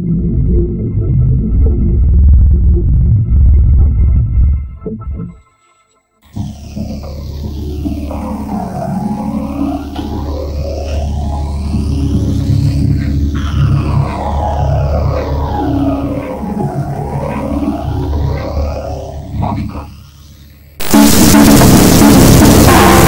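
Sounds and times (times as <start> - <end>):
distorted bass-heavy music: 0.0 - 5.4, 6.3 - 23.0
sweeping high tones: 6.3 - 23.0.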